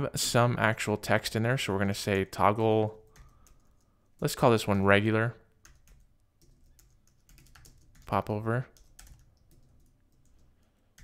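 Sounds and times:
computer keyboard typing: 3.0s - 4.3s, 5.6s - 11.0s.

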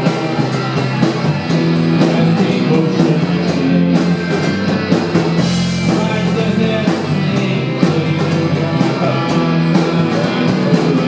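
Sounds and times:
electric guitar: 0.0s - 11.0s
live rock band playing: 0.0s - 11.0s.

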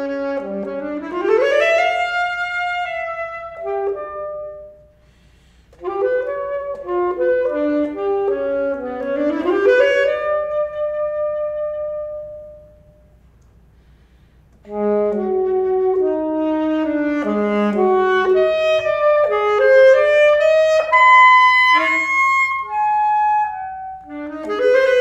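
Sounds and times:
alto saxophone playing: 0.0s - 25.0s.

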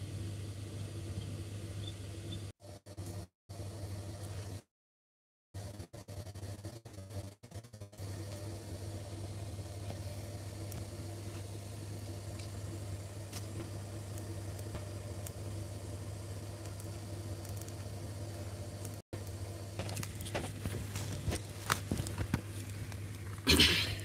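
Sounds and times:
low machine hum: 0.0s - 4.6s, 7.8s - 24.0s.

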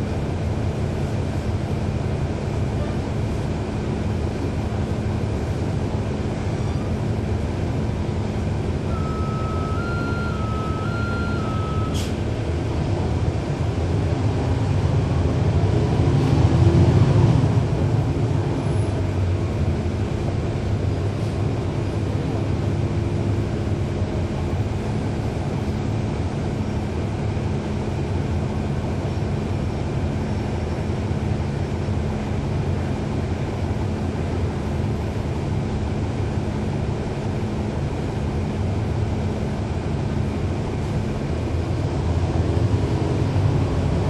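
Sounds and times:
bus diesel engine rumble: 0.0s - 44.0s
two-pitch electronic tone: 8.9s - 12.0s.

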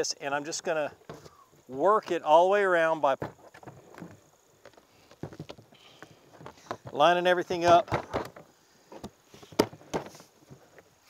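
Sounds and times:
plastic panels knocking and clicking: 6.4s - 10.2s.

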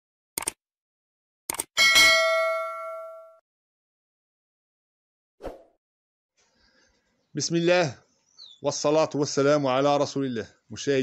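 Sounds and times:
notification bell chime: 1.8s - 3.4s.

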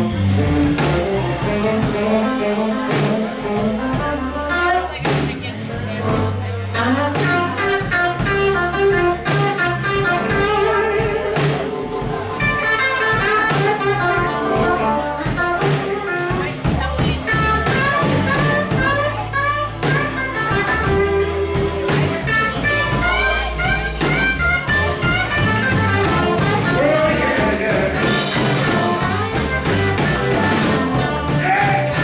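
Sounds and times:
drums: 0.0s - 32.0s
electric guitar: 0.0s - 32.0s
amplified blues harmonica: 6.1s - 16.6s, 17.2s - 32.0s.

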